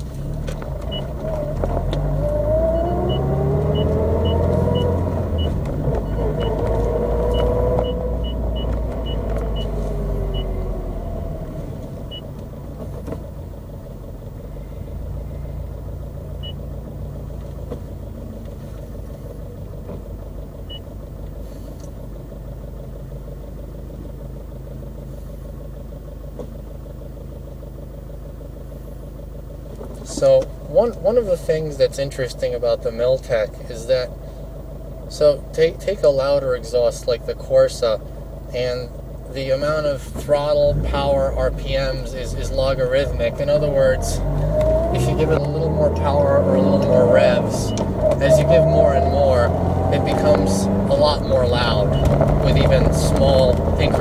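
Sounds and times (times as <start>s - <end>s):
car engine accelerating: 0.0s - 54.0s.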